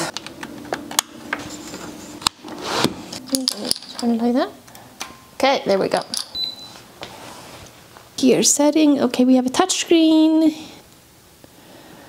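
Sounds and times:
faint background noise: 0:00.0 - 0:12.0
short high beep: 0:06.4 - 0:06.8.

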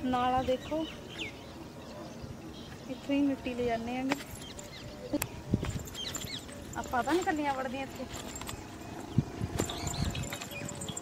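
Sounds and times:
footsteps on dirt path: 0:05.5 - 0:11.0.

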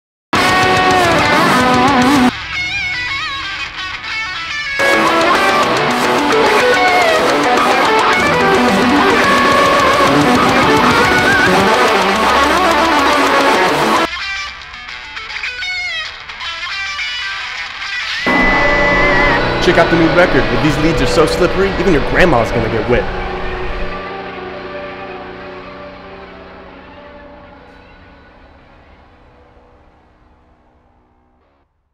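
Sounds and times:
metal music: 0:00.4 - 0:29.9
electric guitar bent notes: 0:00.4 - 0:30.2.

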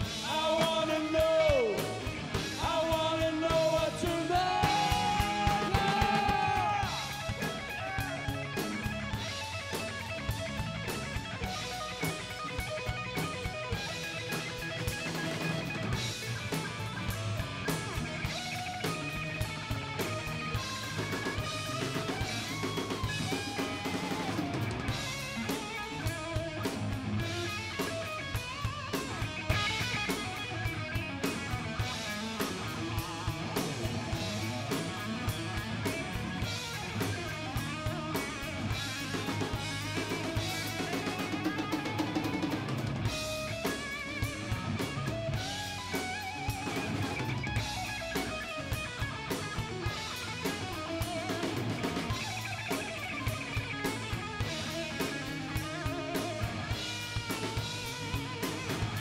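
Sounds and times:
drum kit beat: 0:00.0 - 0:59.0
electric bass: 0:00.0 - 0:59.0
electric guitar: 0:00.0 - 0:59.0.

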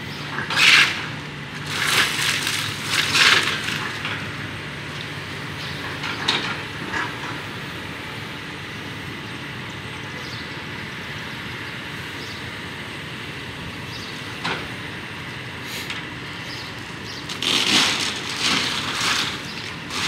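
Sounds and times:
excavator running: 0:00.0 - 0:20.0
debris clanking and crashing: 0:00.4 - 0:04.3, 0:17.3 - 0:20.0.

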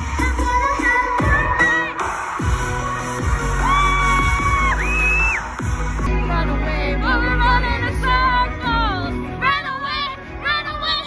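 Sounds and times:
electronic dance music: 0:00.0 - 0:10.2.

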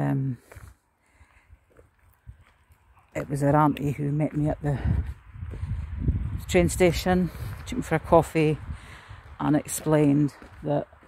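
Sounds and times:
soft footsteps: 0:00.2 - 0:11.0.

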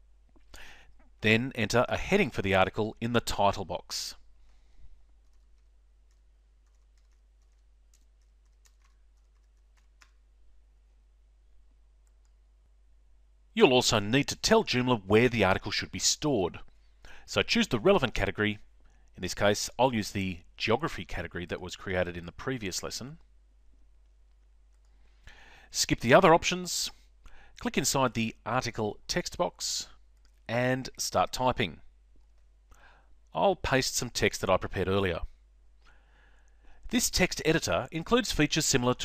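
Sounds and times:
man talking: 0:01.2 - 0:04.2, 0:13.6 - 0:18.6, 0:19.2 - 0:23.2, 0:25.7 - 0:27.0, 0:27.6 - 0:31.9, 0:33.3 - 0:35.3, 0:36.9 - 0:39.0.

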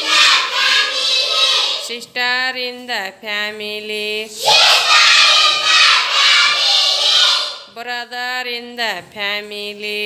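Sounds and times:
children chanting game song: 0:00.0 - 0:01.9, 0:04.3 - 0:07.7
children shouting together: 0:00.0 - 0:01.9, 0:04.4 - 0:07.7.

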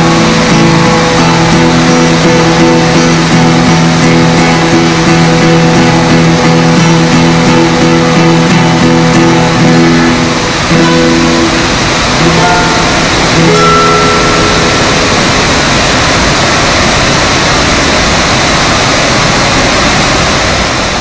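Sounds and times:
guitar notes: 0:00.0 - 0:18.2
waterfall rushing: 0:00.0 - 0:21.0.

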